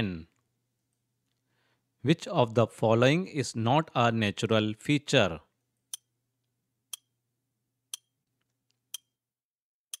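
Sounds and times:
narrator speaking: 0:00.0 - 0:00.4, 0:02.0 - 0:05.5.

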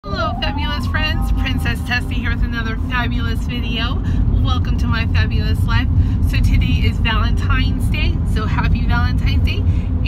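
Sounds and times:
woman talking: 0:00.1 - 0:09.6
car cabin rumble: 0:00.1 - 0:10.0.

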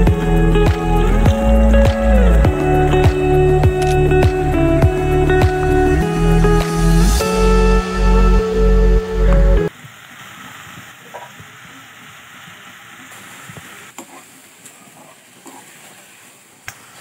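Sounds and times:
background music with beat: 0:00.0 - 0:09.7.

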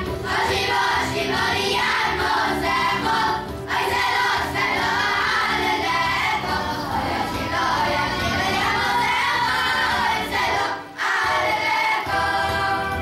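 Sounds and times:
boys' choir singing: 0:00.0 - 0:13.0.

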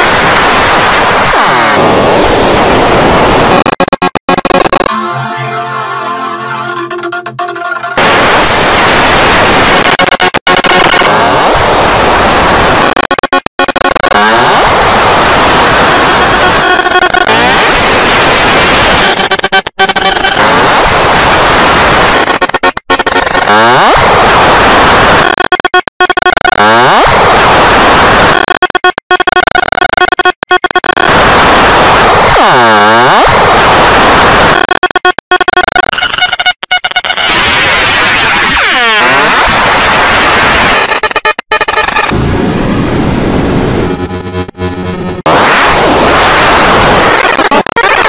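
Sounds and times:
buzzy noise: 0:00.0 - 0:48.0
distorted cartoon soundtrack noise: 0:00.0 - 0:48.0
tone sweeping down and up: 0:01.2 - 0:48.0.

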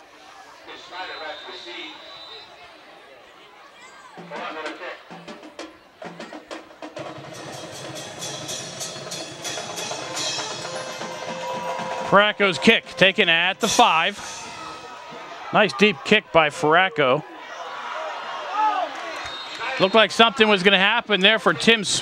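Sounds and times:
marching band drums: 0:04.2 - 0:14.6.

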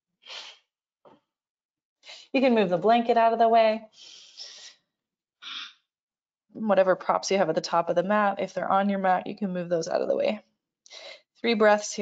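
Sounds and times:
woman breathing: 0:03.9 - 0:04.8.

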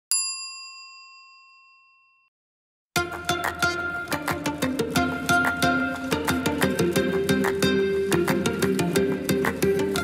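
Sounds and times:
bell-like ding: 0:00.1 - 0:02.3.

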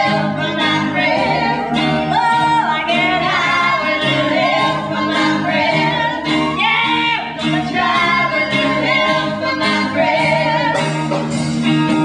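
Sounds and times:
women singing together: 0:00.0 - 0:11.1
live band with guitar: 0:00.0 - 0:12.0.

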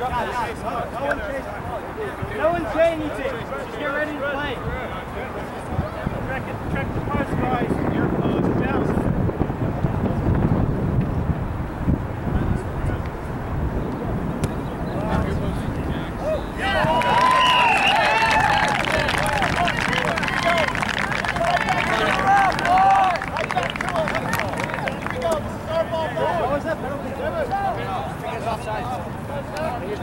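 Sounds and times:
wind rumble on microphone: 0:04.5 - 0:24.8
people shouting calls: 0:16.1 - 0:26.6.

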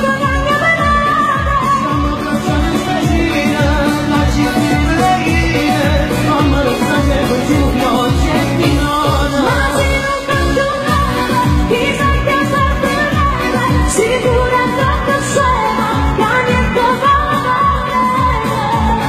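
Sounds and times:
amplified pop backing music: 0:00.0 - 0:19.0
woman singing into a microphone: 0:00.0 - 0:19.0.

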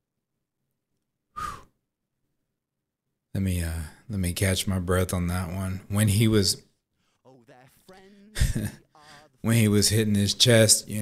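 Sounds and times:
man sighing: 0:07.9 - 0:09.4.

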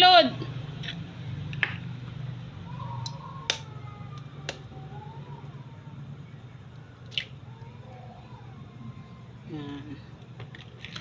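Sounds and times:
egg squishing and dripping: 0:06.7 - 0:07.6.

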